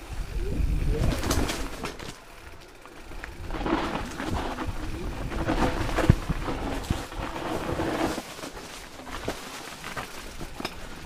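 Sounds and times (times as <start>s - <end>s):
bike tyres rumbling on dirt trail: 0.0s - 11.0s
bike frame and chain rattling: 0.7s - 11.0s
sharp clacks over roots: 1.0s - 11.0s.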